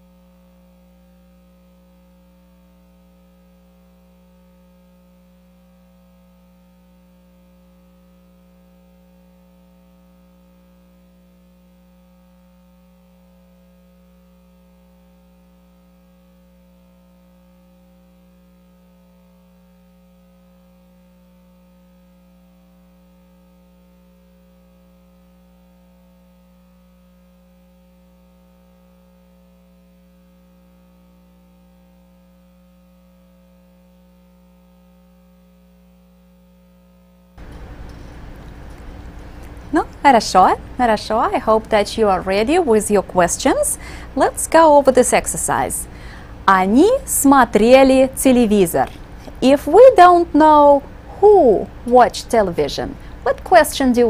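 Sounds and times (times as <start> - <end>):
electrical mains hum: 0.0 - 54.0.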